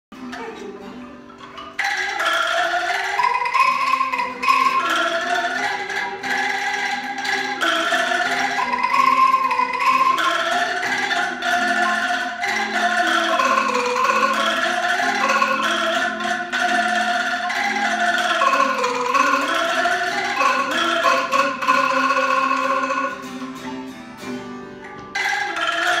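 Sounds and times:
angklung ensemble playing: 0.1s - 26.0s
string instrument: 0.1s - 26.0s.

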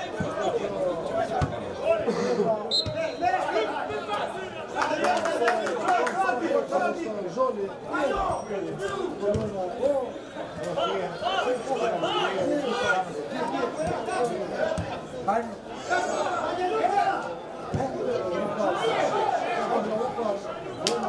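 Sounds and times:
chatter of several people: 0.0s - 21.0s.

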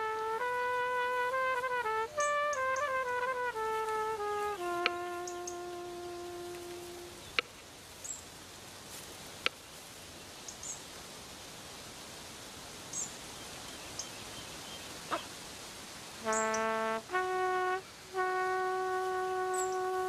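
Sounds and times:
brass horn playing held notes: 0.0s - 7.4s, 16.2s - 20.0s
forest ambience: 0.0s - 20.0s.

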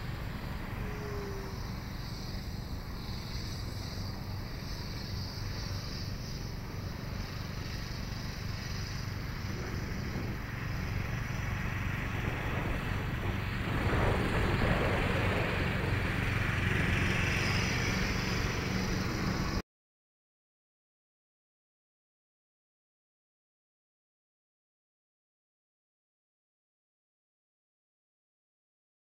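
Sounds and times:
electric model plane motor buzzing: 0.0s - 19.6s
wind rumble on microphone: 0.0s - 19.6s.

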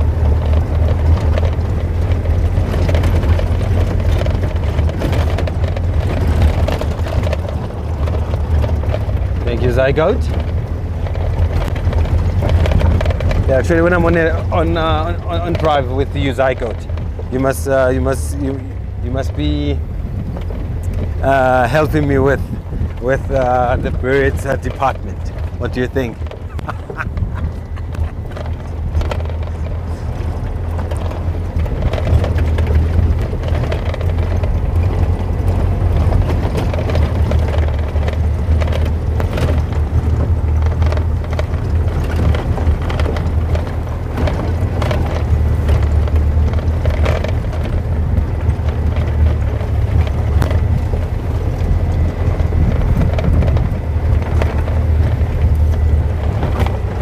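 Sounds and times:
vehicle body knocks and rattles: 0.0s - 57.0s
vehicle engine drone: 0.0s - 57.0s.

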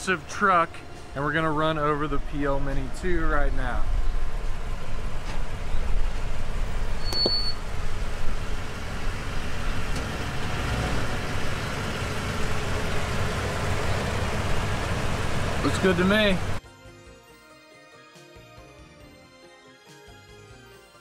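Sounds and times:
truck engine rumbling: 0.0s - 16.6s
short high beep: 7.0s - 7.6s.

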